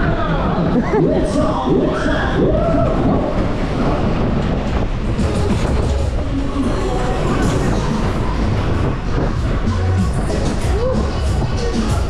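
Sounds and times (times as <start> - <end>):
ride wheels rumbling on rails: 0.0 - 12.0.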